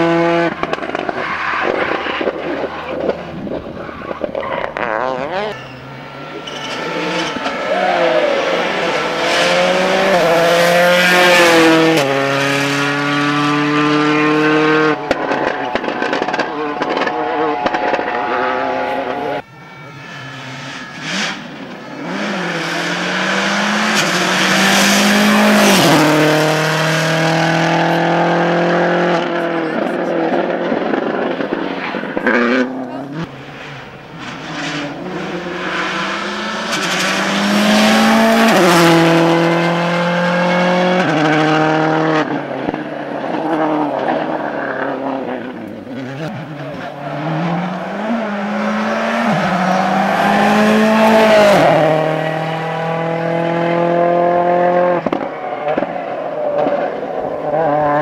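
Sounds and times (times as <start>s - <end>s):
rally car accelerating through gears: 0.0s - 19.4s, 20.3s - 58.0s
rally car approaching and passing: 0.0s - 58.0s.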